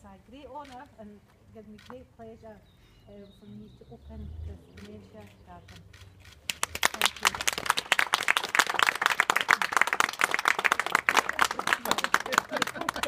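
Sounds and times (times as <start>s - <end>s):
group of people clapping: 6.4s - 13.0s.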